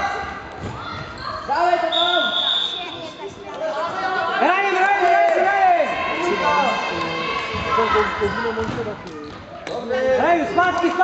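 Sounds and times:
voices shouting in echoing hall: 0:00.0 - 0:09.0.

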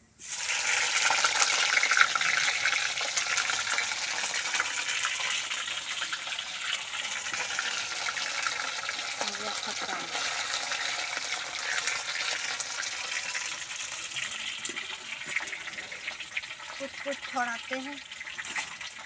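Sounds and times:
fish frying in hot oil: 0:00.0 - 0:19.0.

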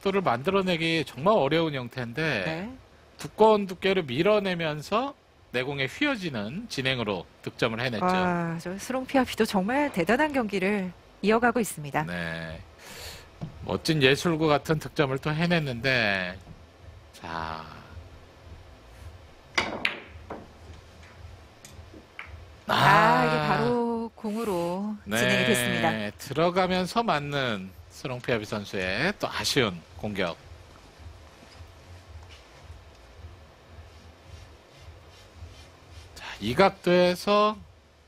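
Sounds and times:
faint low hum: 0:00.0 - 0:38.0
cue tip striking ball: 0:19.6 - 0:20.6.

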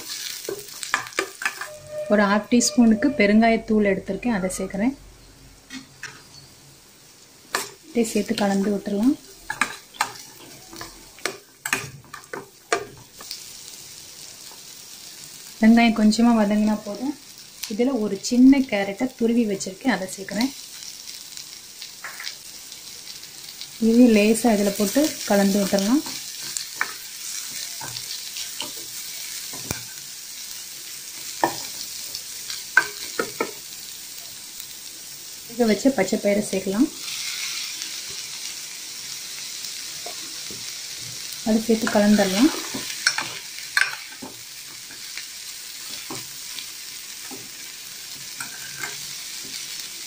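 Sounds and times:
food sizzling in oil: 0:00.0 - 0:50.0
spatula scraping a pan: 0:48.2 - 0:49.6.

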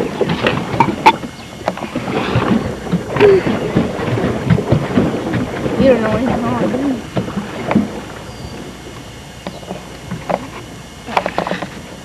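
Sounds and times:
boat knocks and creaks: 0:00.0 - 0:12.0
paddle wheel churning water: 0:00.0 - 0:12.0.

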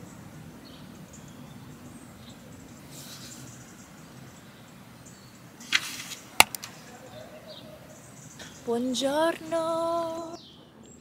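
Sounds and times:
faint outdoor background: 0:00.0 - 0:11.0
sharp snap: 0:05.7 - 0:06.7.

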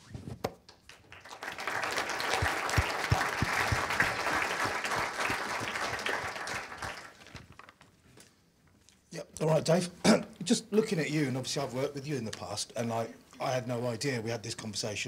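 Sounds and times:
audience applauding: 0:00.9 - 0:07.4.

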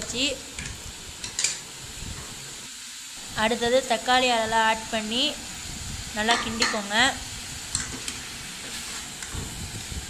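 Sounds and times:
liver sizzling in a pan: 0:00.0 - 0:10.0
spatula stirring in a metal pan: 0:07.6 - 0:09.5.

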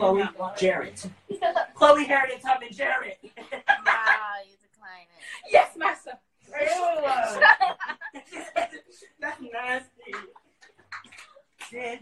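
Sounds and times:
people speaking quietly: 0:03.4 - 0:07.6.

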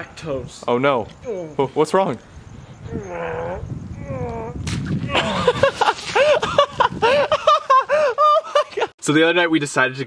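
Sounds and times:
voices: 0:00.0 - 0:06.7
sharp smack: 0:04.6 - 0:05.0.

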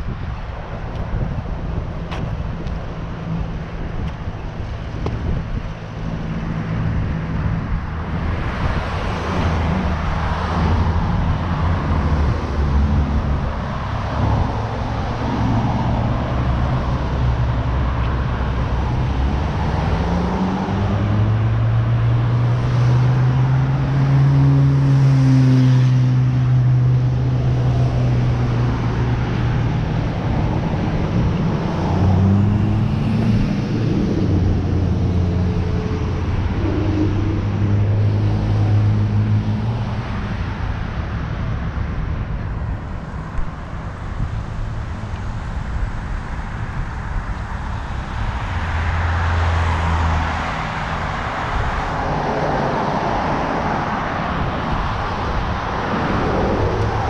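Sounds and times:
traffic hum and tyre noise: 0:00.0 - 0:57.0
vehicles passing by: 0:00.0 - 0:57.0.

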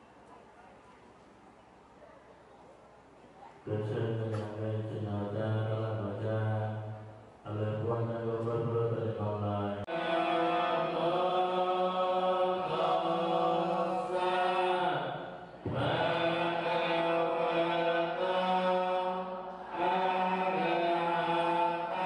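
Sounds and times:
monks chanting: 0:03.7 - 0:22.0.

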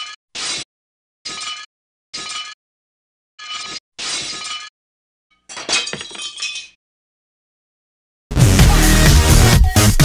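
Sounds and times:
dish shattering: 0:05.5 - 0:06.8.

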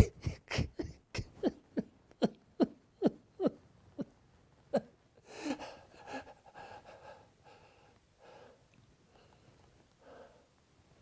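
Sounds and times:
man's anguished cries: 0:00.0 - 0:06.2.

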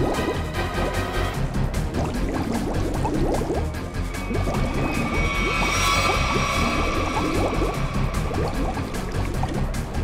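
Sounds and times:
dramatic music with low drone: 0:00.0 - 0:10.0
underwater bubbling: 0:01.8 - 0:10.0.

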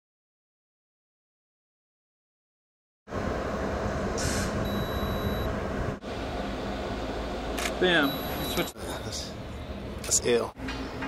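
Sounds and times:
low rumbling noise: 0:03.1 - 0:11.0.

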